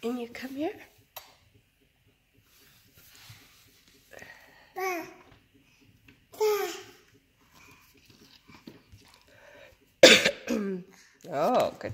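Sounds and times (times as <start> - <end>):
loud sudden cough: 10.0 - 10.8.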